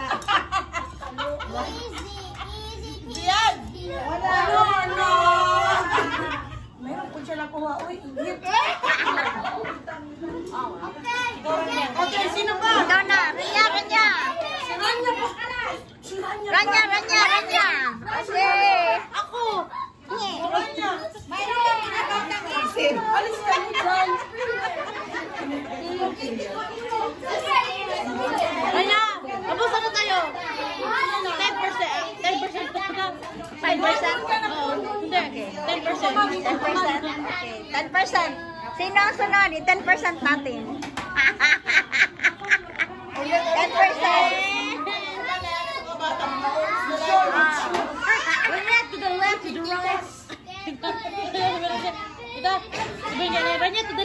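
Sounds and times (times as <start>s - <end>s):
adults and children chattering: 0.0s - 54.0s
people talking: 0.0s - 54.0s.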